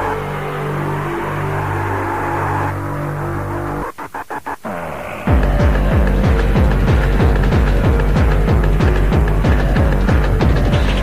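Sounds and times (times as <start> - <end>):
low synth notes: 0.0 - 11.0.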